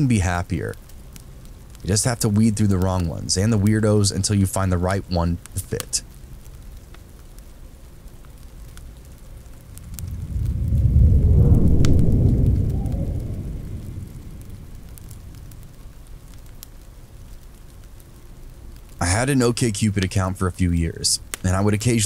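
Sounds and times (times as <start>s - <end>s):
fireplace crackling: 0.0s - 22.0s
thunder rolling: 9.6s - 16.4s.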